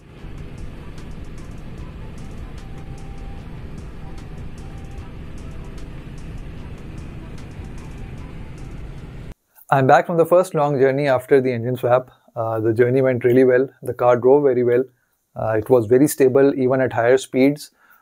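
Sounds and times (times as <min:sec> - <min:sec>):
background music: 0:00.0 - 0:09.4
in-cabin road and wind noise: 0:00.0 - 0:09.4.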